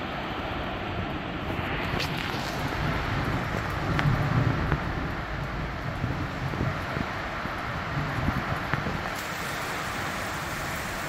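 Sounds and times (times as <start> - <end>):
wind buffeting microphone: 0.0 - 11.0
steady hiss: 1.6 - 11.0.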